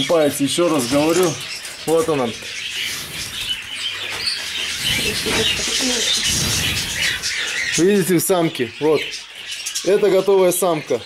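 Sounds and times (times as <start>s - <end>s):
canaries chirping: 0.0s - 11.0s
low rustling: 1.9s - 7.9s.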